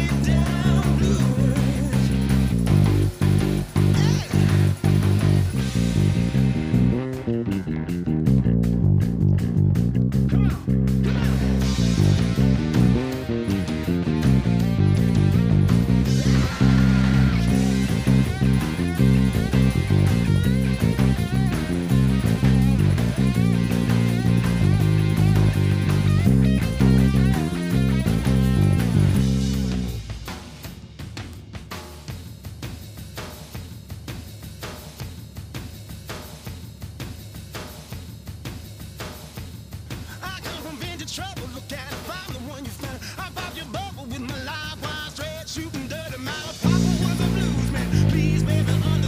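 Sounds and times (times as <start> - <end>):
person singing: 0.0 - 2.5, 3.8 - 5.1, 10.3 - 20.3, 40.0 - 49.0
electric bass playing: 0.0 - 30.2, 46.6 - 49.0.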